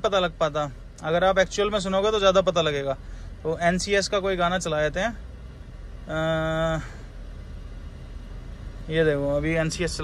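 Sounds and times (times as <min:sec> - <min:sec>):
man speaking: 0:00.0 - 0:05.2, 0:06.1 - 0:07.0, 0:08.8 - 0:10.0
car cabin rumble: 0:00.0 - 0:10.0.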